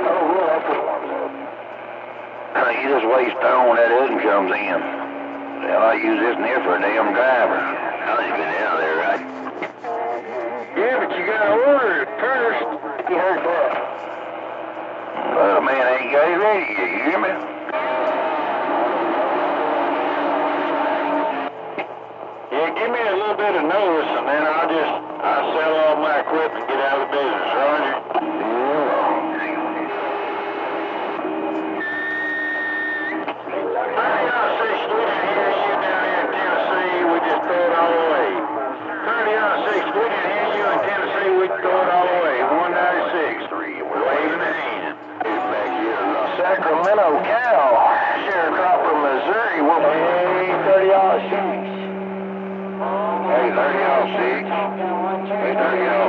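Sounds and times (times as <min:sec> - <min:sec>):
garbled radio voices: 0:00.0 - 0:56.0
radio noise: 0:00.0 - 0:56.0
whistle-like radio tones: 0:02.6 - 0:13.6, 0:15.3 - 0:21.5, 0:23.4 - 0:56.0.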